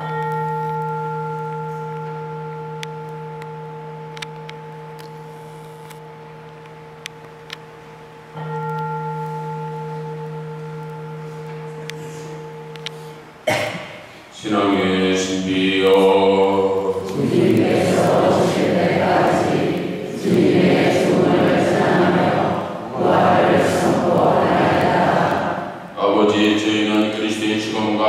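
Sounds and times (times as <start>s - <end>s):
bell ringing with low hum: 0.0s - 7.0s, 8.3s - 13.2s.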